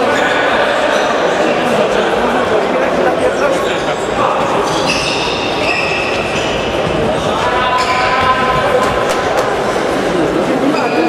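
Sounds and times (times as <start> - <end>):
players calling out: 3.3 - 11.0
shoes squeaking on court floor: 3.7 - 9.2, 10.6 - 11.0
high squeals: 4.6 - 8.6.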